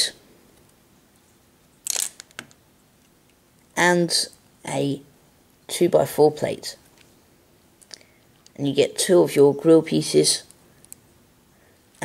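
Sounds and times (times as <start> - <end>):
plastic bricks clicking: 1.8 - 2.6.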